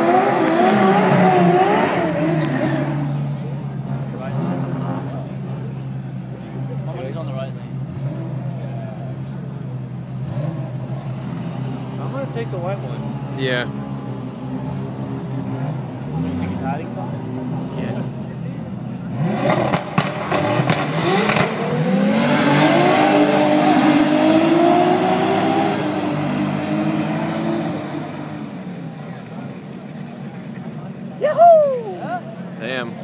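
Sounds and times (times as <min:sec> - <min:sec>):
car engines revving: 0:00.0 - 0:33.0.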